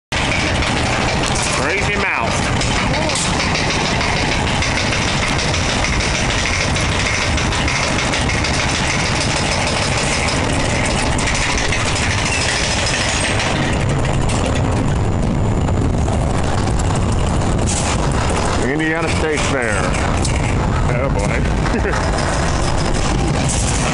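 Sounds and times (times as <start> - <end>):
fairground noise: 0.1 - 23.9
roller coaster lift rattle: 0.1 - 23.9
voices: 1.5 - 3.4, 18.6 - 20.0.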